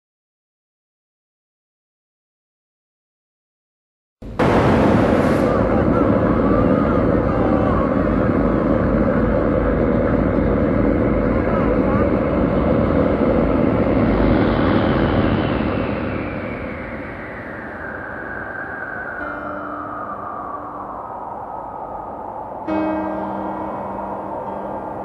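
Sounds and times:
vehicle-like rumble: 4.2 - 19.2
whine falling in pitch: 4.2 - 25.0.

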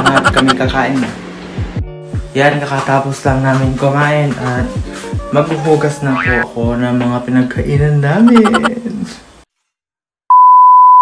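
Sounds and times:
voice: 0.0 - 1.2, 5.3 - 9.2.

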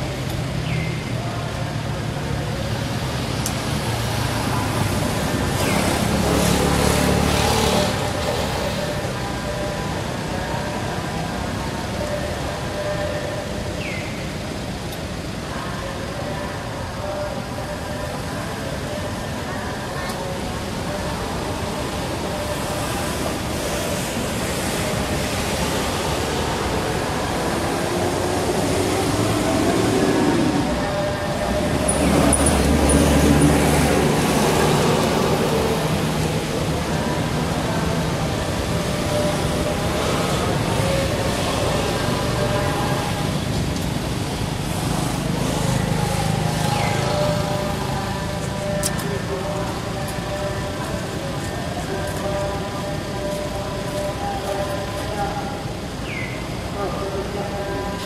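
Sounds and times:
traffic: 0.0 - 58.0.

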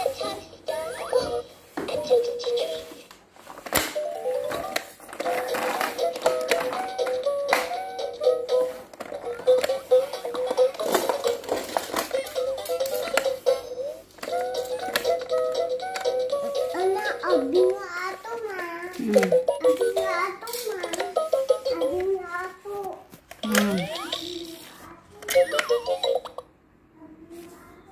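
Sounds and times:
electronic toy melody: 0.0 - 3.0, 4.0 - 17.8, 19.1 - 20.1, 20.8 - 22.0, 23.4 - 24.3, 25.3 - 26.5.

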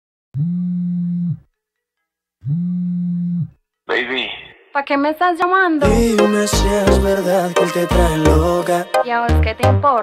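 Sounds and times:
music: 5.1 - 10.0.

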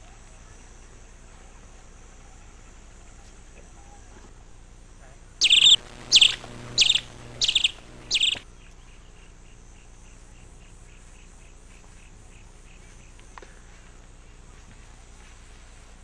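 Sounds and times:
insect chirping: 5.4 - 8.4
bird calling: 5.4 - 9.0.

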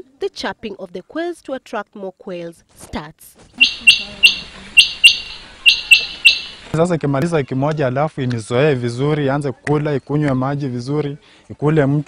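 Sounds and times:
quails calling: 3.6 - 6.8.

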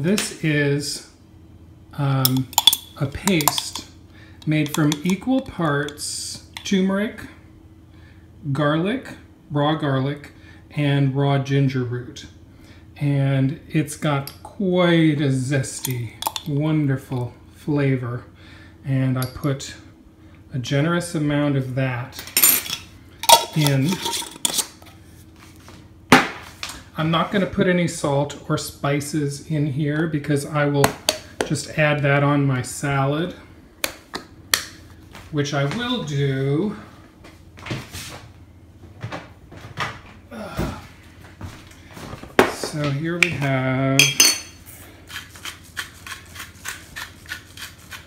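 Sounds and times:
salt grinder grinding: 4.4 - 5.2, 45.1 - 48.0
glass jar clattering: 22.4 - 24.6, 44.0 - 44.6.

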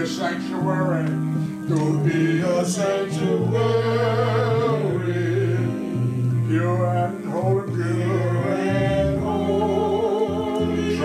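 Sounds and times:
held low instrument chords: 0.0 - 11.0
man singing gospel song: 1.7 - 11.0.

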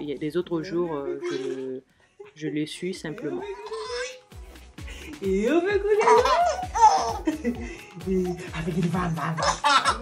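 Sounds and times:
baby laughing: 1.1 - 1.7, 3.4 - 4.3, 5.9 - 7.6, 8.2 - 10.0.

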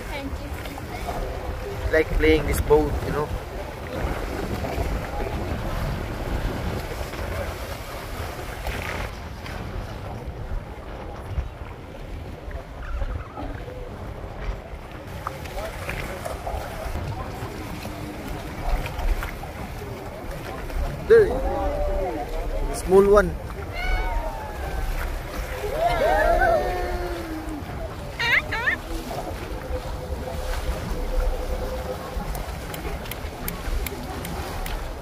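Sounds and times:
water washing along hull: 0.0 - 35.0
wind on microphone: 0.0 - 35.0.

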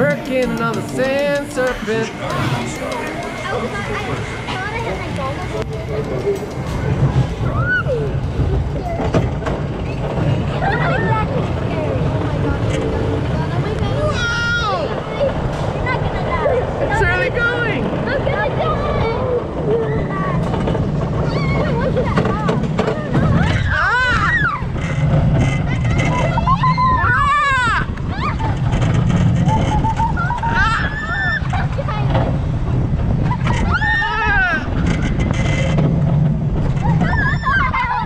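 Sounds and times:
roller coaster rumbling on track: 0.0 - 38.0.

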